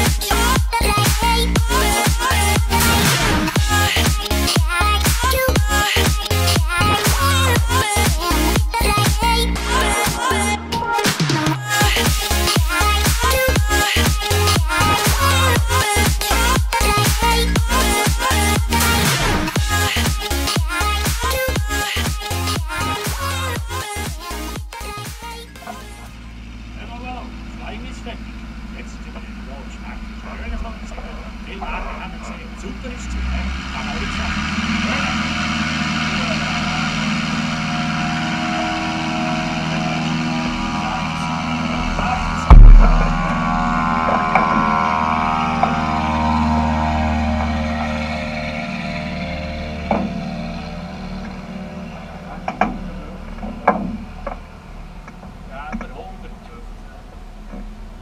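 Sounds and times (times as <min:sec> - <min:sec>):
sharp knock near microphone: 0:42.5 - 0:43.5
propeller aircraft engine passing: 0:43.1 - 0:53.4.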